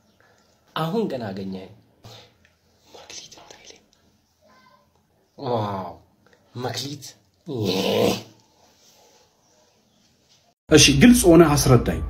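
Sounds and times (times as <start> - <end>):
person whispering: 2.1 - 3.9.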